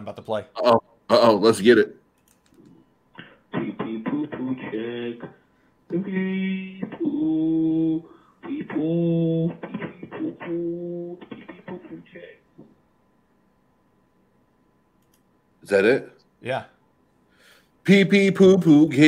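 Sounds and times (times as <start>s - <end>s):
person singing on voicemail: 3.6s - 12.0s.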